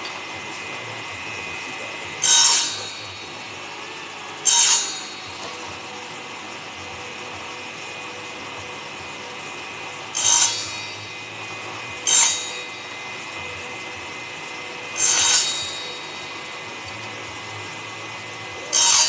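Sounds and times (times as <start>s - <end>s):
table saw cutting wood: 0.0s - 19.0s
table saw running: 0.0s - 19.0s.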